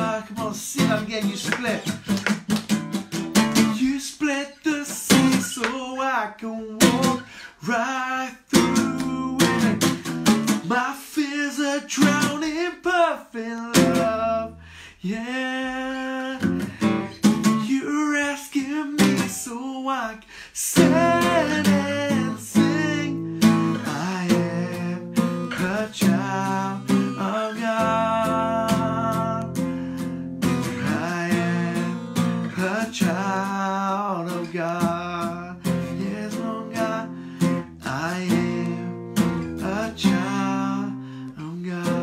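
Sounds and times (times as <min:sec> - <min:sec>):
man singing: 0:00.0 - 0:02.3, 0:03.4 - 0:42.0
acoustic guitar strumming: 0:00.0 - 0:20.0, 0:20.7 - 0:42.0.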